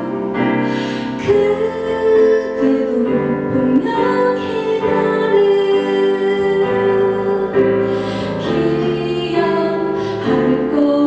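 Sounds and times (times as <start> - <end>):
stage piano: 0.0 - 11.0
woman singing into a microphone: 0.0 - 11.0.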